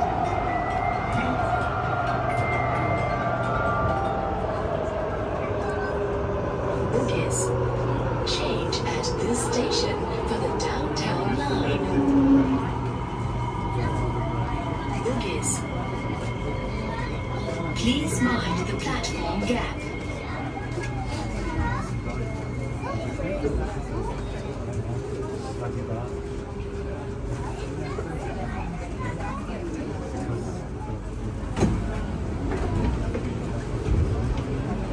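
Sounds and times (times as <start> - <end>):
train wheels rumbling: 0.0 - 34.9.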